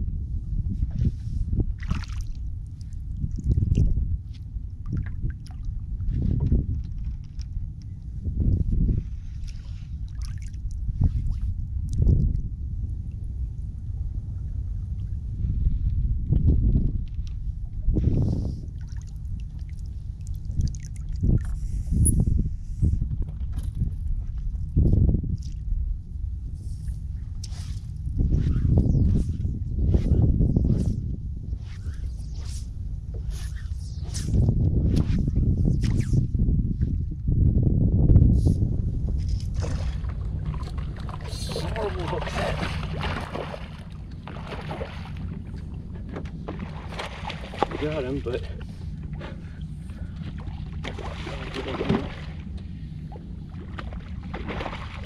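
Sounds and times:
steady low rumble: 0.0s - 55.0s
water sloshing against hull: 0.5s - 37.6s, 38.2s - 55.0s.

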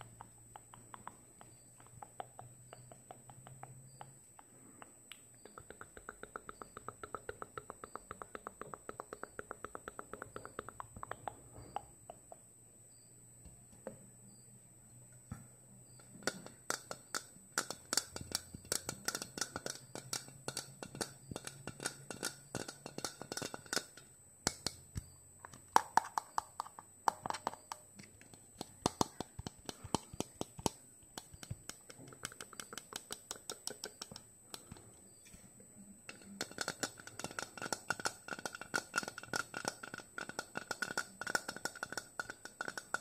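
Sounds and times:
fingernails tapping plastic bottle: 0.0s - 12.4s, 16.0s - 35.4s, 36.1s - 43.0s.

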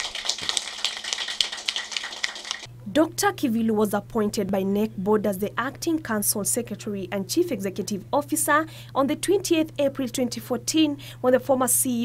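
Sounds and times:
steady low hum: 2.6s - 12.0s.

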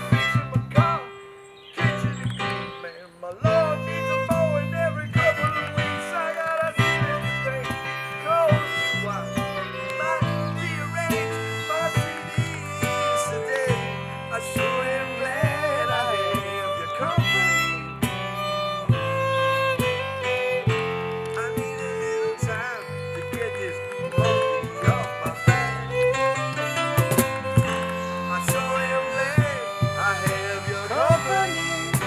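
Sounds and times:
strummed acoustic guitar: 0.0s - 1.2s, 3.4s - 32.0s
electric keyboard: 0.0s - 32.0s
fiddle melody: 0.0s - 32.0s.

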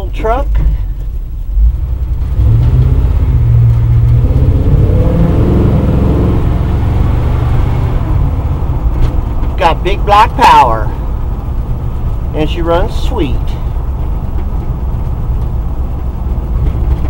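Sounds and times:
truck engine deep rumble: 0.0s - 17.0s.

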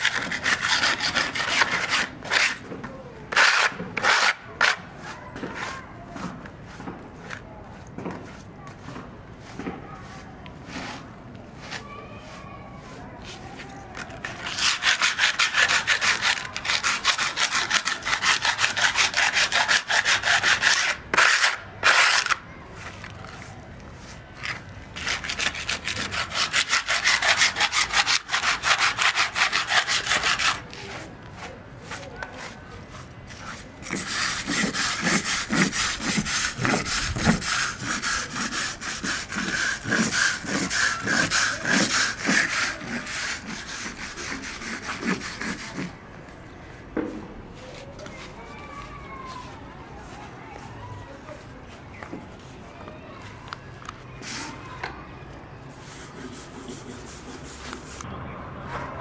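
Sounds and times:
metal scraper scraping concrete: 0.0s - 2.6s, 3.3s - 7.4s, 13.9s - 23.1s, 24.4s - 31.1s, 33.3s - 46.0s
wire brush scrubbing concrete: 0.0s - 2.6s, 3.3s - 46.0s, 55.7s - 58.1s.

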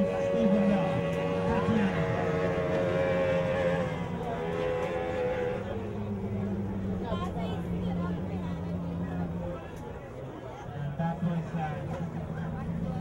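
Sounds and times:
outboard motor droning: 0.0s - 13.0s.

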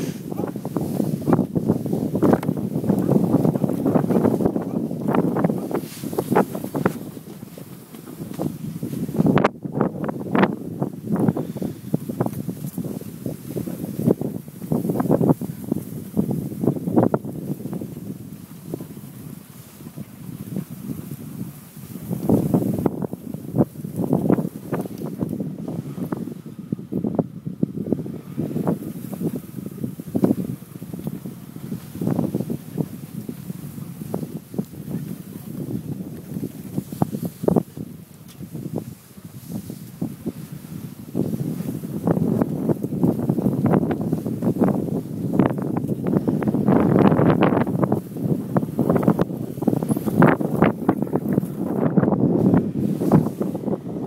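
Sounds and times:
car driving over bumpy ground: 0.0s - 10.5s
wind buffeting microphone: 0.0s - 54.0s.

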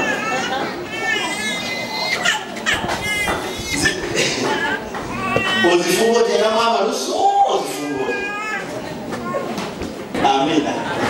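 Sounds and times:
high voices crying out: 0.0s - 9.6s
crowd hubbub: 0.0s - 11.0s.

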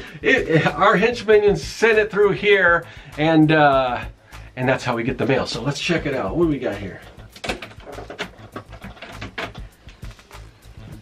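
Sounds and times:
background music with low bass: 0.0s - 11.0s
canister clicking and knocking: 7.1s - 9.6s.

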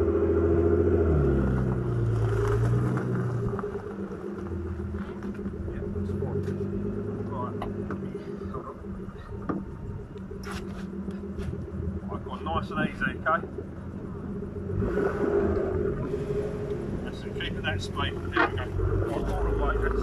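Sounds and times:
car engine idling: 0.0s - 20.0s.

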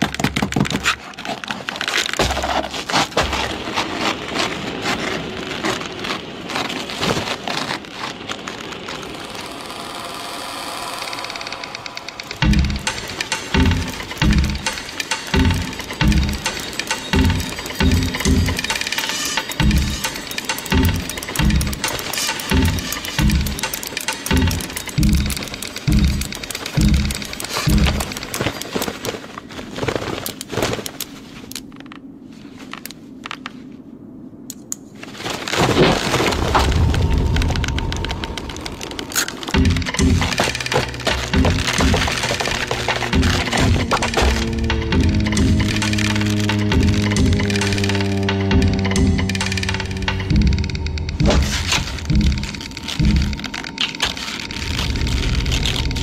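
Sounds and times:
music with low beat: 12.3s - 28.2s, 39.5s - 53.6s.

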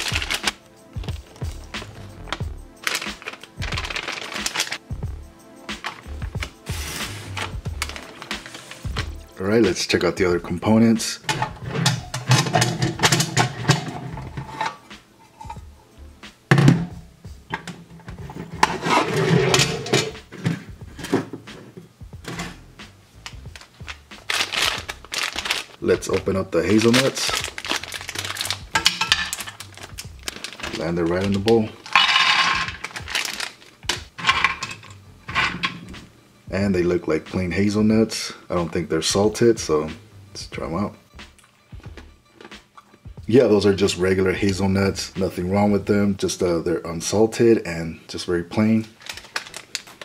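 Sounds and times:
background music: 0.0s - 50.0s
nuts rattling in a metal tin: 2.8s - 4.8s, 23.6s - 35.8s, 49.0s - 50.0s
metal tins clattering: 11.3s - 15.6s, 17.5s - 22.6s, 26.6s - 36.0s.

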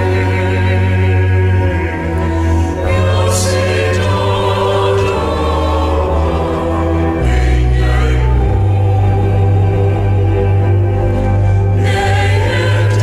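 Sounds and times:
choir singing: 0.0s - 13.0s
sustained bass notes: 0.0s - 13.0s.

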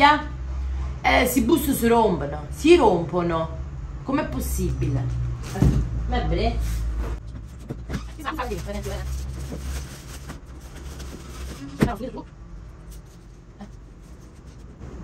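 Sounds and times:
woman speaking: 0.0s - 0.4s, 1.0s - 6.8s, 8.0s - 9.2s, 11.6s - 12.3s
plastic bags rustling and crinkling: 8.0s - 12.1s.

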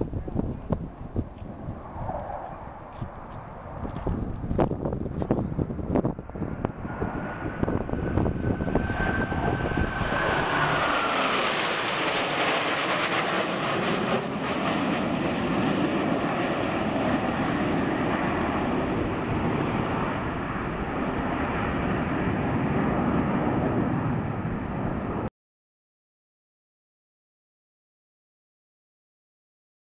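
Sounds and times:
high jet whine dropping in pitch: 0.0s - 25.3s
jet engine roar: 0.0s - 25.3s.

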